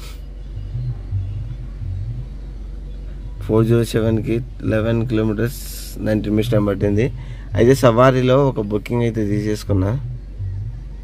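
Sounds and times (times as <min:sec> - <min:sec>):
car engine idling: 0:00.0 - 0:11.0
man speaking: 0:03.4 - 0:10.1.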